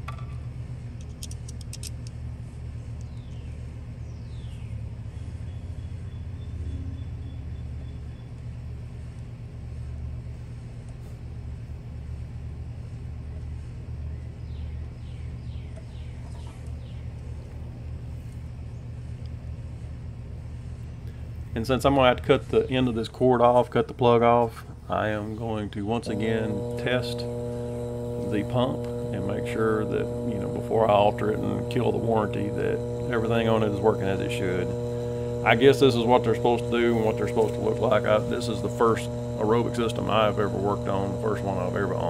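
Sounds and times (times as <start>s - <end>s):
low rumble with hum: 0.0s - 42.0s.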